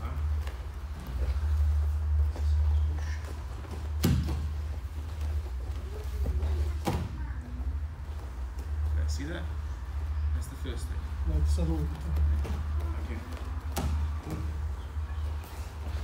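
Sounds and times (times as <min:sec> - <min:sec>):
steady low hum: 0:00.0 - 0:16.0.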